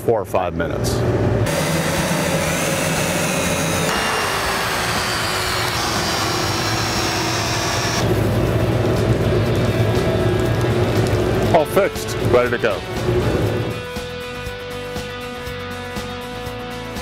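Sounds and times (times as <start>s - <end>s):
power drill motor whine: 1.5s - 8.2s.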